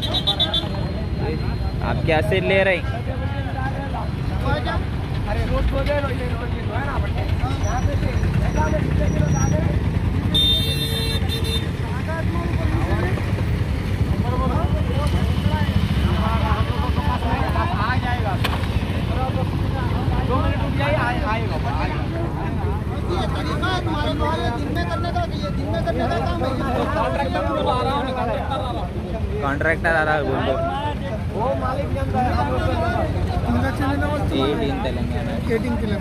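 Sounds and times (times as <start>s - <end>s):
people talking over one another: 0.0s - 36.0s
road traffic rumble: 0.0s - 36.0s.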